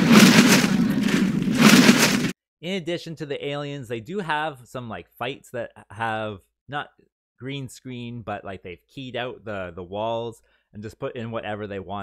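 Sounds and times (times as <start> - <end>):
whooshing noise: 0.0 - 2.3.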